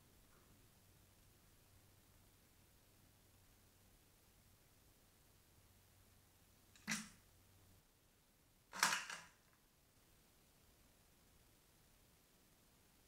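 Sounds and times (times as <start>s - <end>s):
scratchy clattering on plastic: 8.8s - 9.4s.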